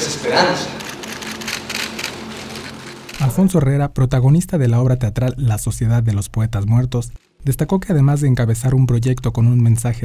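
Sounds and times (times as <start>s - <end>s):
crackle: 0.8s - 3.5s, 6.9s - 7.9s.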